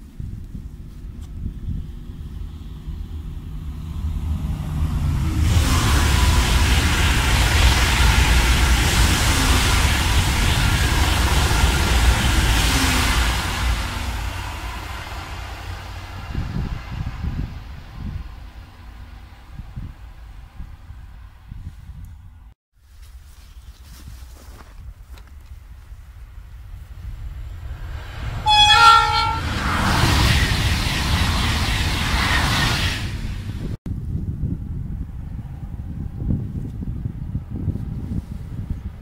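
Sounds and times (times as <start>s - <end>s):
high-speed train passing: 0.0s - 22.6s, 25.2s - 39.0s.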